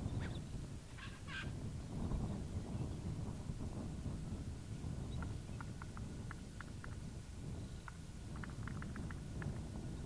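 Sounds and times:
bird calling: 0:00.0 - 0:01.6
low wind rumble: 0:00.0 - 0:10.0.

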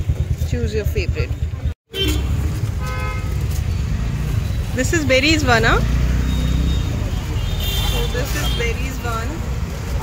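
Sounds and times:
street traffic rumble: 0:00.0 - 0:10.0
vehicle horn toot: 0:01.9 - 0:03.4.

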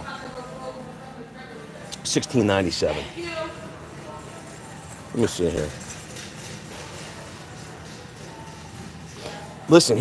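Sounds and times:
large store background hum: 0:00.0 - 0:10.0.

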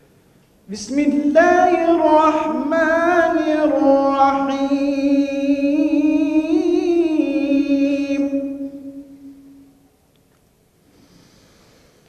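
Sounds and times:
man reciting a long note: 0:00.7 - 0:09.7.

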